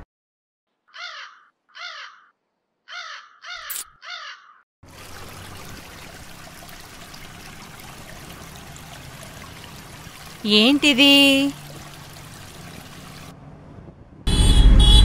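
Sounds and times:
crows cawing: 0:00.9 - 0:04.6
water running from tap: 0:04.8 - 0:13.3.

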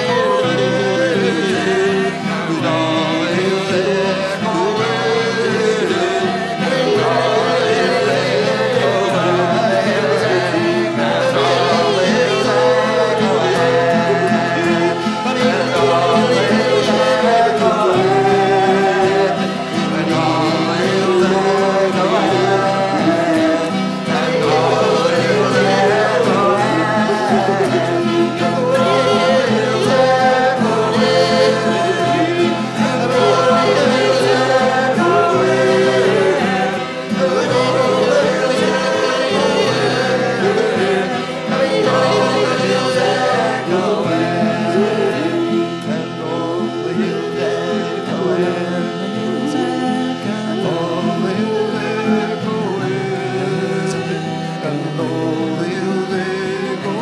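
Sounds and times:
group singing: 0:00.0 - 0:57.0
harmonium drone: 0:00.0 - 0:57.0
strummed guitar: 0:00.0 - 0:57.0.

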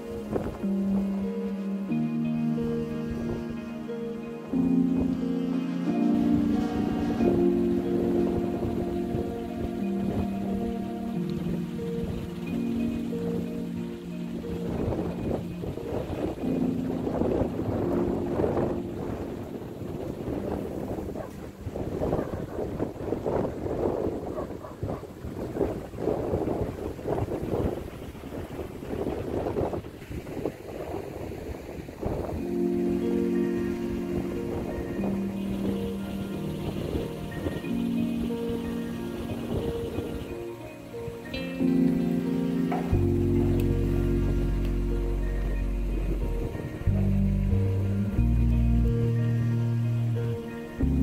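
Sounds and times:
background music with held notes: 0:00.0 - 0:29.8, 0:31.6 - 0:51.0
wind buffeting microphone: 0:00.0 - 0:51.0.

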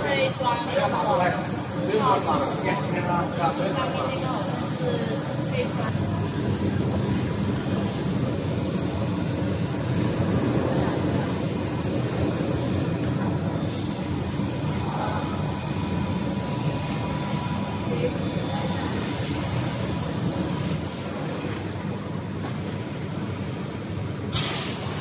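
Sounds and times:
machinery low mechanical hum: 0:00.0 - 0:25.0.

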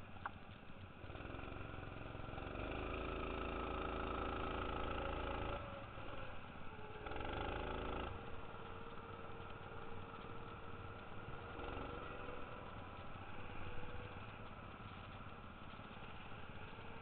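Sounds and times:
go-kart engine revving: 0:01.0 - 0:17.0.

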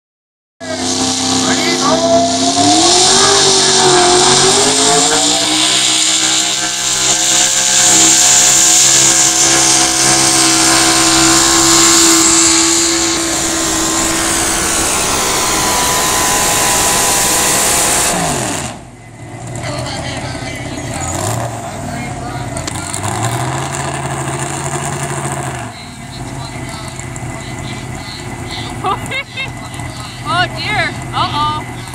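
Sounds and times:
engine revving: 0:00.6 - 0:31.9
pulling tractor engine at full power: 0:00.6 - 0:31.9.

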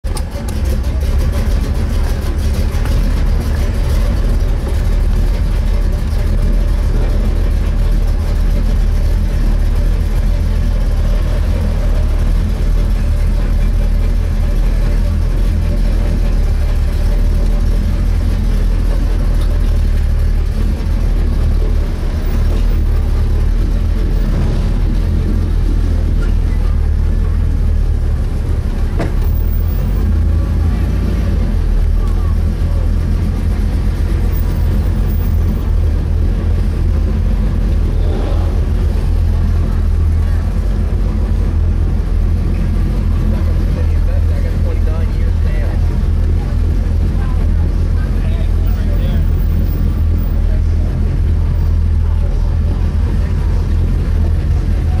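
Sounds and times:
car engine low drone: 0:00.0 - 0:55.0.

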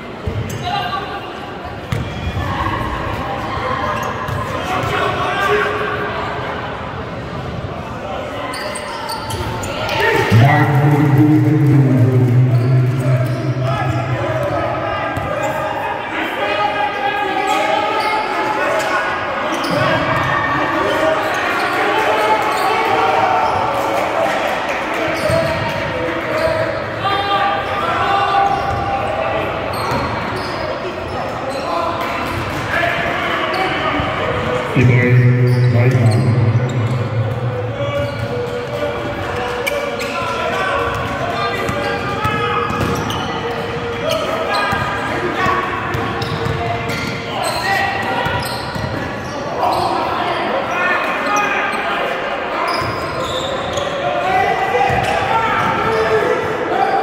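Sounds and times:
players calling out: 0:08.5 - 0:16.0.

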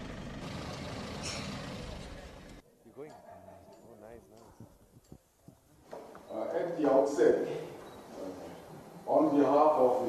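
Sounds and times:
off-road vehicles idling: 0:00.0 - 0:02.6.

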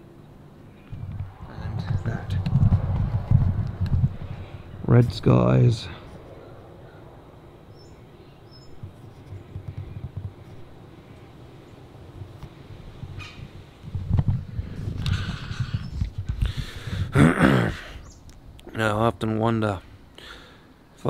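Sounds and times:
camera handling rumble and knocks: 0:00.9 - 0:04.2, 0:08.8 - 0:10.7, 0:12.2 - 0:16.6.

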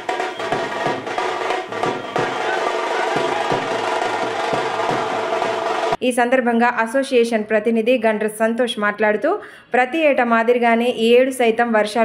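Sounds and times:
frame drums beating: 0:00.0 - 0:06.0.

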